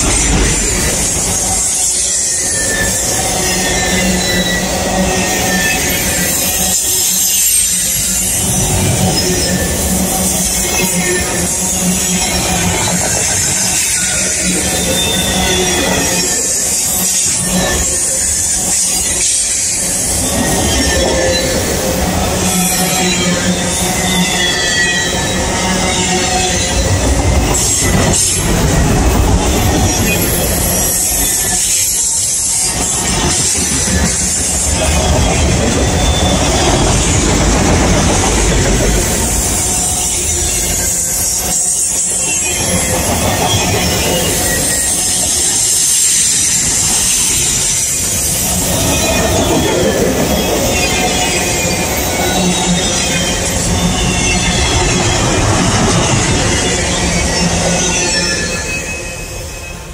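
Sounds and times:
high wheel squeal: 0.0 - 59.9
train wheels rumbling on rails: 0.0 - 59.9.

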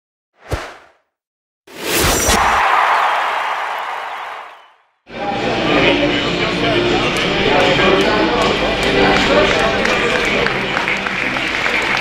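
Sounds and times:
whoosh sound effect: 1.7 - 2.6
stadium crowd voices: 2.4 - 12.0.

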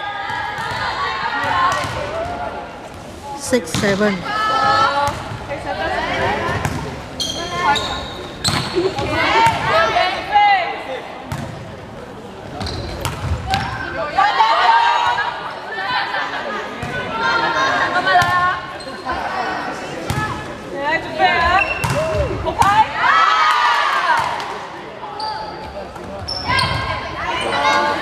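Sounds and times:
players calling and shouting: 0.0 - 28.0.

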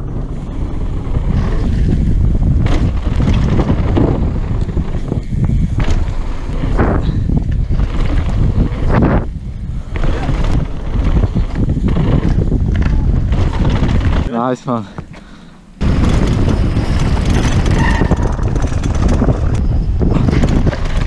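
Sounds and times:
wind buffeting microphone: 0.0 - 14.3, 15.8 - 21.0
bike knocking and rattling: 0.0 - 21.0
tyres rumbling on trail: 0.0 - 21.0.

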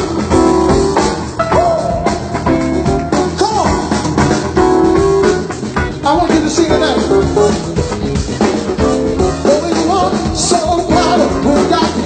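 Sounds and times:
live band with drums and guitar: 0.0 - 12.0.

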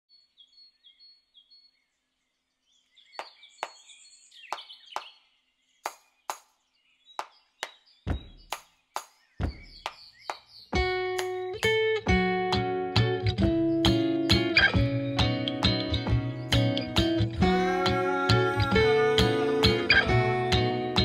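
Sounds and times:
birds chirping: 0.1 - 11.9, 13.4 - 21.0
deep thumps: 8.1 - 8.6, 9.4 - 9.9
clicking beat: 8.1 - 11.8.

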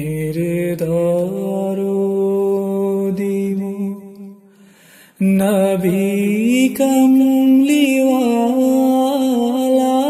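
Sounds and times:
man singing: 0.0 - 4.4, 5.2 - 10.0.

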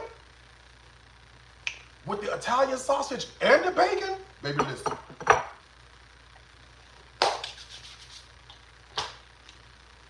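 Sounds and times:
tableware knocking: 4.6 - 5.6.

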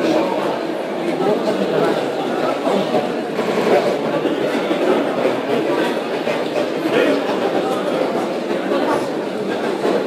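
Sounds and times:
babble of students talking: 0.0 - 10.0.

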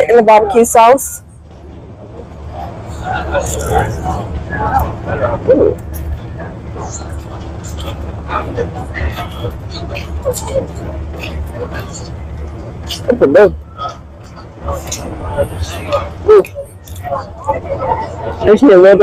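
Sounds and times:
steady low rumble: 0.0 - 19.0
background voices: 1.8 - 19.0.

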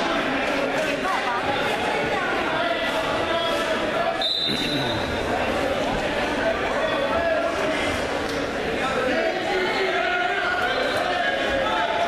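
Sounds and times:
chatter of voices: 0.0 - 12.0
referee's whistle blast: 4.2 - 5.1.

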